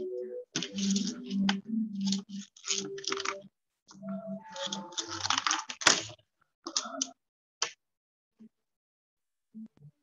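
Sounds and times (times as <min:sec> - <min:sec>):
keyboard typing: 0:00.5 - 0:06.0.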